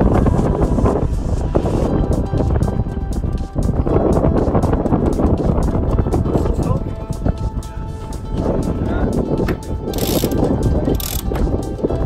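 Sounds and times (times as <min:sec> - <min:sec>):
wind rumble on microphone: 0:00.0 - 0:12.0
winch ratcheting clicks: 0:09.9 - 0:11.5.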